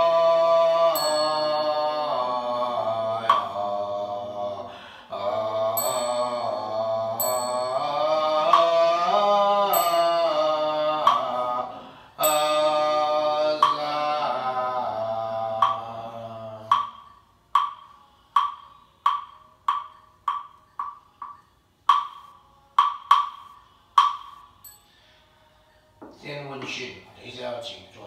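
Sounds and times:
group chanting with held notes: 0.0s - 17.1s
small bell ringing: 1.0s - 2.3s, 5.8s - 8.1s, 9.7s - 10.6s, 12.2s - 12.9s, 24.6s - 25.0s.

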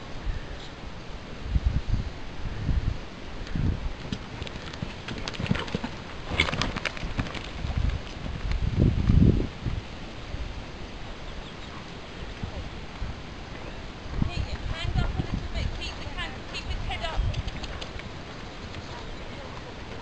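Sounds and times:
horse hoofbeats on soft ground: 4.0s - 9.2s, 14.2s - 20.0s
light sharp clicks: 17.2s - 18.9s.

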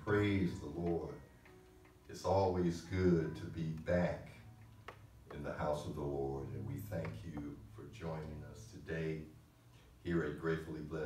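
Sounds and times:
man speaking: 0.0s - 1.2s, 2.1s - 4.4s, 5.3s - 9.4s, 10.0s - 11.0s.

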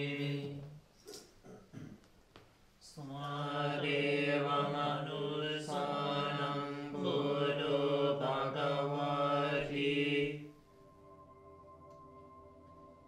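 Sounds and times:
monks chanting together: 0.0s - 0.8s, 2.9s - 10.5s.

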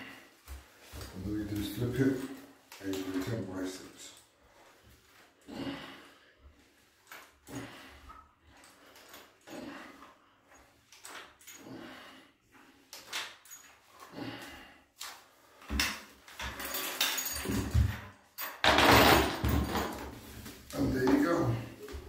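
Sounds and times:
man breathing hard: 5.4s - 6.8s, 7.4s - 10.6s, 11.5s - 12.9s, 14.0s - 15.8s.

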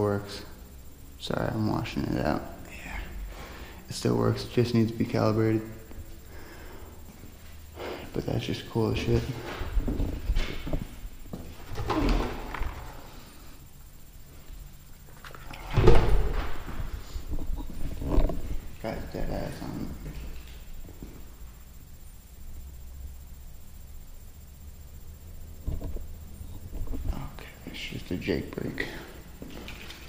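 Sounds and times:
footsteps and camera jostling: 9.2s - 13.0s, 29.4s - 30.0s
metal door hinges creaking: 11.6s - 13.0s.

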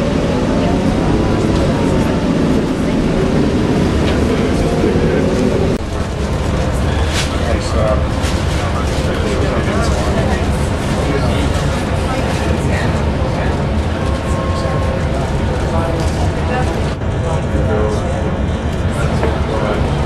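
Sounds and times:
bus engine drone with whine: 0.0s - 20.0s.

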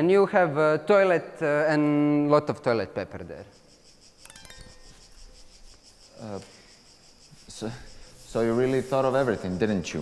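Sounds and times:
insect-like chirring: 1.4s - 10.0s
high ringing chime: 4.2s - 5.6s.

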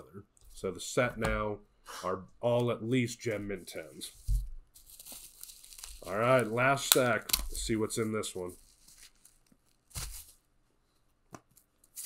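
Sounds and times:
bubble wrap crinkling: 4.2s - 10.5s, 11.5s - 12.0s.

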